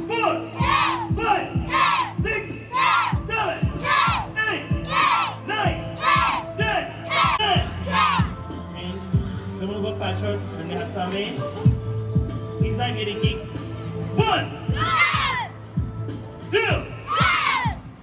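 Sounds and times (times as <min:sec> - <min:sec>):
children shouting in unison: 0:00.6 - 0:03.2, 0:03.8 - 0:05.4, 0:06.0 - 0:06.4, 0:07.1 - 0:08.3, 0:14.7 - 0:15.5, 0:17.1 - 0:17.8.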